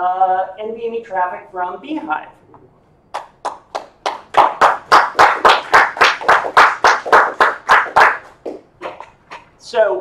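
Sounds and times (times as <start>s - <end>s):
hand clapping: 3.1s - 9.5s.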